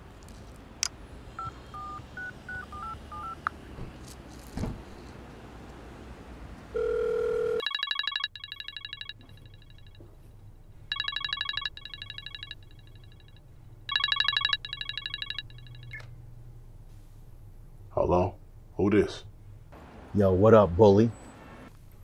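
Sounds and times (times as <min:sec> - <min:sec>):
trilling electronic phone rings: 0:06.8 - 0:10.1, 0:10.9 - 0:16.0.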